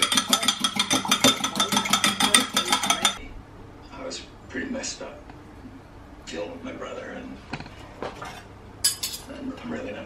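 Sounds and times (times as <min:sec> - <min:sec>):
fork whisking eggs in glass jug: 0:00.0 - 0:03.2.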